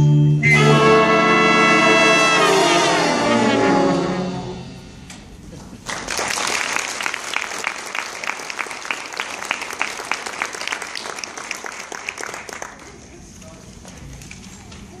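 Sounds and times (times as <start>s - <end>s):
audience applauding: 5.6s - 13.2s.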